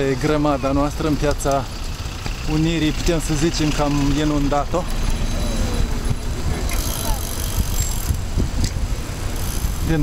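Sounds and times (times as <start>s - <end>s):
faint voices of riders: 2.6s - 8.0s
wind buffeting microphone: 4.0s - 10.0s.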